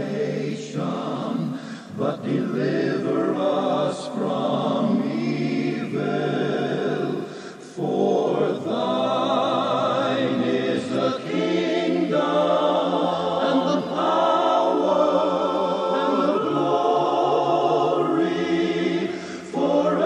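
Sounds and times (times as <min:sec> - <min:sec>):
backing singers holding notes: 0:00.0 - 0:20.0.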